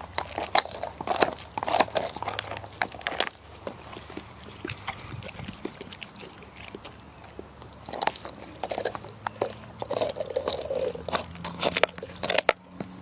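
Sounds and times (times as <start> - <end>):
dog gnawing chew bone: 0.0 - 13.0.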